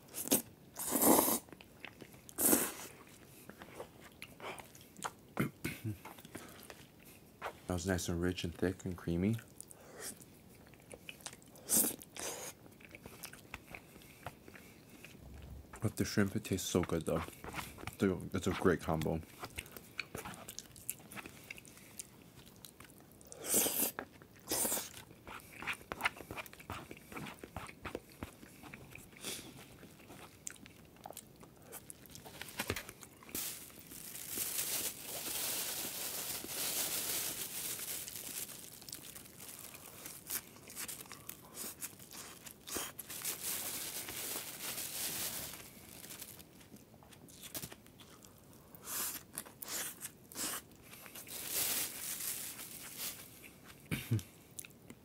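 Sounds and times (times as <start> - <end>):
crunching and chewing food: 0.0 - 7.6, 9.3 - 55.0
plastic bag crinkling: 31.9 - 47.8, 51.0 - 53.4.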